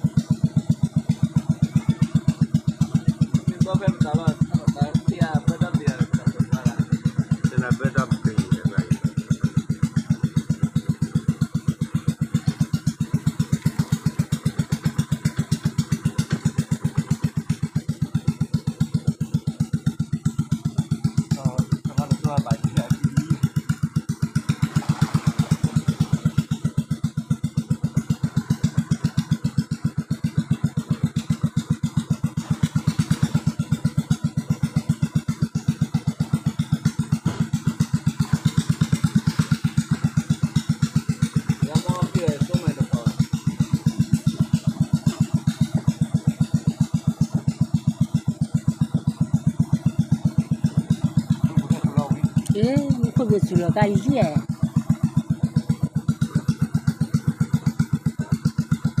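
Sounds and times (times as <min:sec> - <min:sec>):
boat engine puttering: 0:00.0 - 0:59.0.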